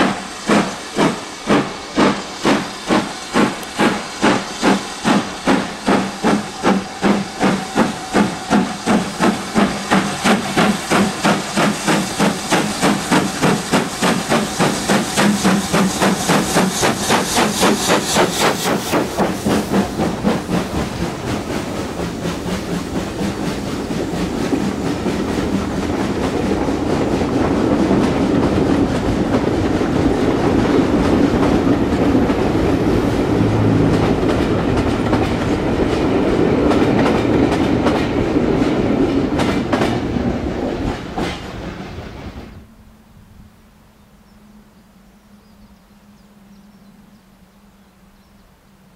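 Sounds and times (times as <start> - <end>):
train wheels clattering: 0.0 - 42.5
steam locomotive exhaust beats: 0.0 - 43.3.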